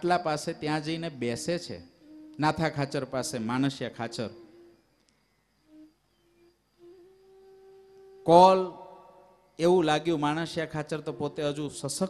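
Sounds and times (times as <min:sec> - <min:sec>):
faint hummed tones: 0:00.0 - 0:12.0.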